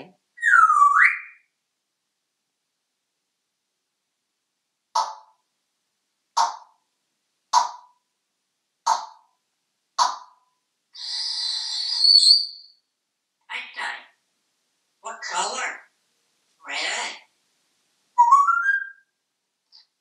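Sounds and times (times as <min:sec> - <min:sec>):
parrot calls: 0:00.4 - 0:01.4, 0:11.0 - 0:12.6, 0:16.6 - 0:17.3.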